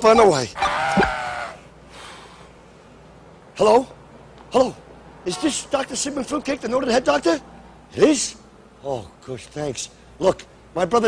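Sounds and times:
man imitating rooster crow: 0.6 - 1.6.

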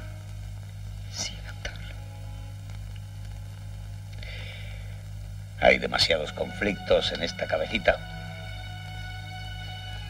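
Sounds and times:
film soundtrack hum and hiss: 0.0 - 10.0.

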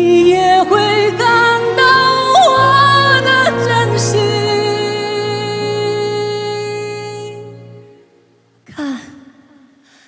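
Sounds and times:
person sighing: 8.7 - 10.0.

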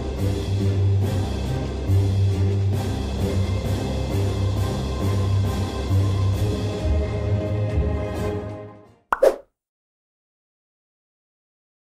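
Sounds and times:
short pitched blip: 9.2 - 9.4.

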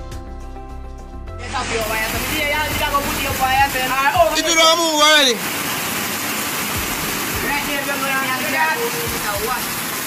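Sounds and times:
floodwater rushing: 1.4 - 10.0.

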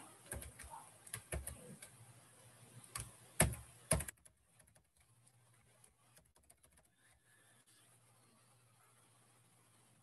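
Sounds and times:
keyboard keys clicking: 0.2 - 2.0, 2.9 - 5.1, 5.8 - 6.9.

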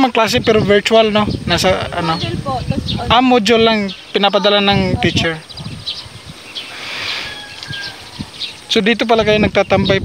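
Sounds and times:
thin bird call: 5.2 - 8.7.

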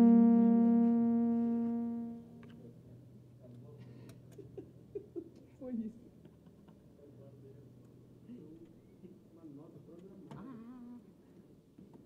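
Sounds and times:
band holding final chord: 0.0 - 2.5.

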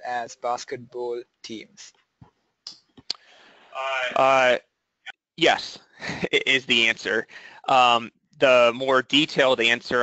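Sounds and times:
man saying uh: 0.0 - 1.9, 3.8 - 4.6, 5.4 - 10.0
faint hiss: 5.4 - 8.7.

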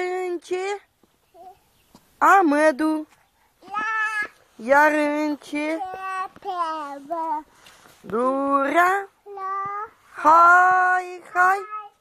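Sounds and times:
girl singing: 3.6 - 4.3, 5.8 - 7.5, 9.3 - 10.0, 11.6 - 12.0.

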